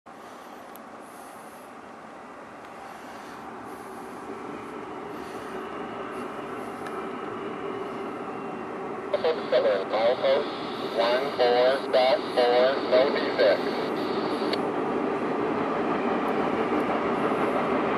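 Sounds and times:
diesel locomotives rumbling: 0:00.1 - 0:17.9.

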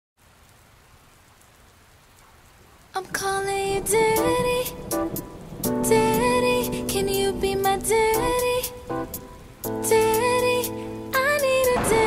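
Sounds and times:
recorded rain sound: 0:00.2 - 0:12.0.

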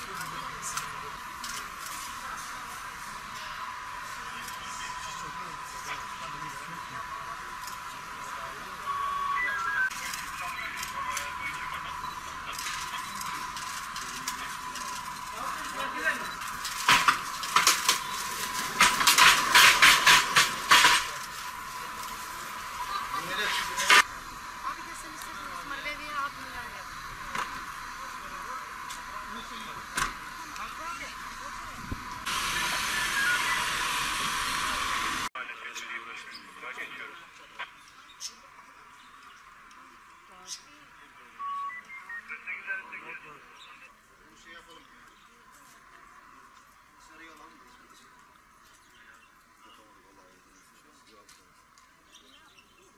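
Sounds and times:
loud steady hiss: 0:00.0 - 0:37.2.

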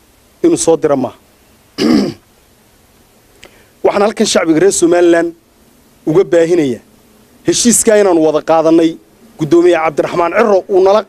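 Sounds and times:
man clearing his throat: 0:01.8 - 0:02.2.

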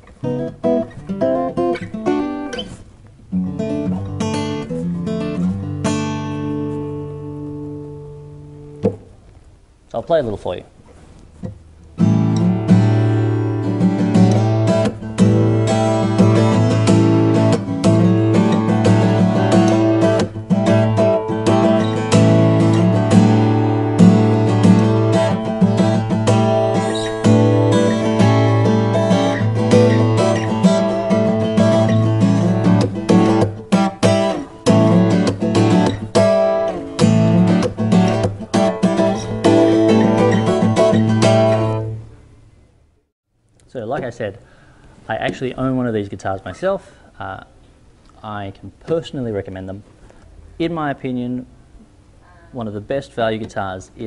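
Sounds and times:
acoustic guitar chords and plucked notes: 0:00.0 - 0:09.5, 0:11.0 - 0:42.6.

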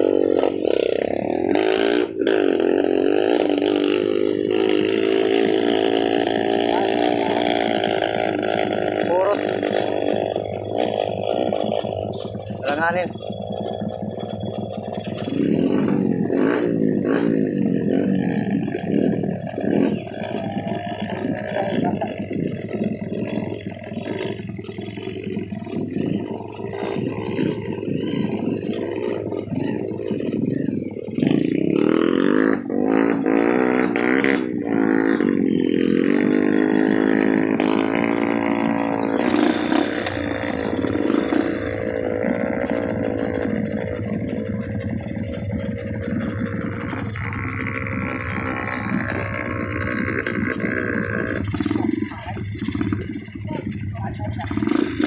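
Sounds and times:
dirt bike engines clattering: 0:00.0 - 0:55.0
motorcycle engine revving: 0:00.0 - 0:55.0.

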